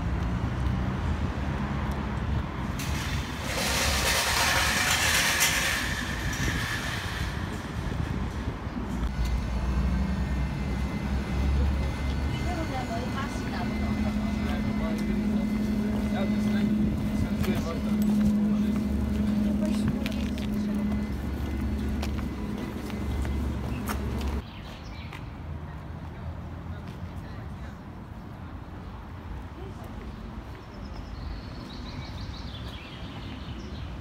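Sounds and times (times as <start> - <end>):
road traffic: 0.0 - 34.0
voices of passers-by: 0.0 - 34.0.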